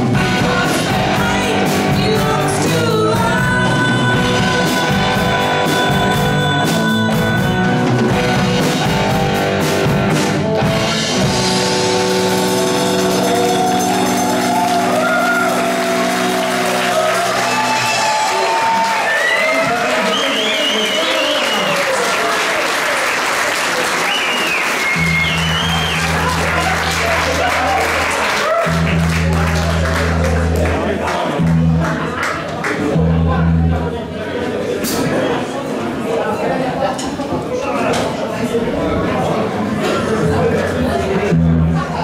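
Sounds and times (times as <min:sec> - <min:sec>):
rock band chord ringing: 0:00.0 - 0:18.1
audience applauding and cheering: 0:12.3 - 0:33.0.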